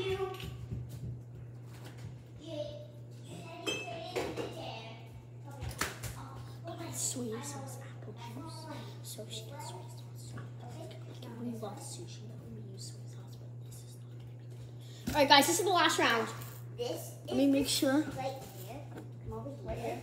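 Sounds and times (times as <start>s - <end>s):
steady low hum: 0.0s - 20.0s
cups knocking and clinking: 3.6s - 4.6s.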